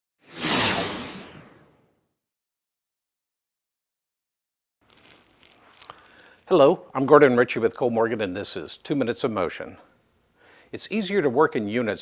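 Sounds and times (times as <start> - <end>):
whoosh sound effect: 0.2 - 1.8.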